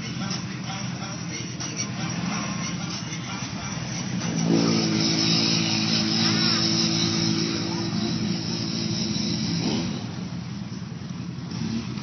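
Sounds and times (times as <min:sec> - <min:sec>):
engine running hard under load: 0:00.0 - 0:12.0.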